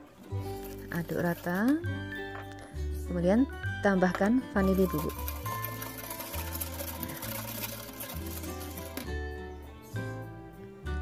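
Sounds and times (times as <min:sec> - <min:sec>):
background music: 0:00.0 - 0:11.0
whisk clicking against saucepan: 0:04.6 - 0:09.2.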